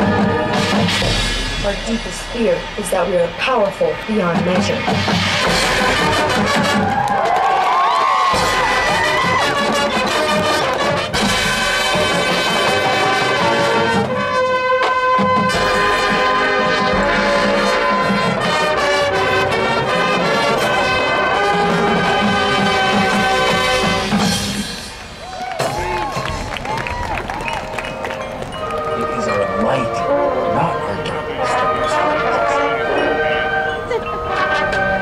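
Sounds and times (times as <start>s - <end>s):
marching band brass chords: 0.0s - 35.0s
marching band percussion: 0.0s - 35.0s.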